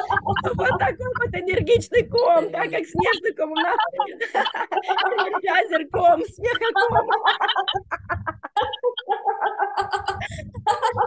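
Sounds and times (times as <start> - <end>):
group of people laughing: 0.0 - 11.0.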